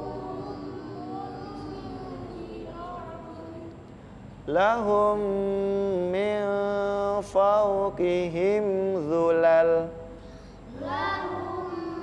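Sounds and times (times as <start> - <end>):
children chanting recitation: 0.0 - 3.7, 10.7 - 12.0.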